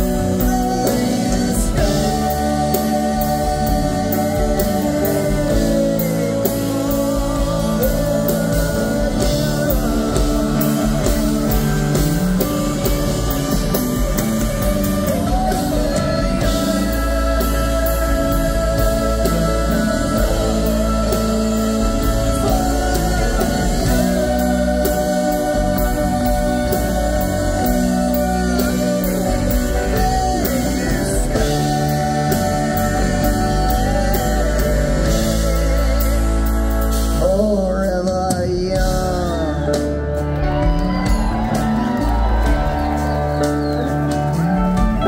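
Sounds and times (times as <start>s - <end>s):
live band playing instrumental: 0.0s - 45.0s.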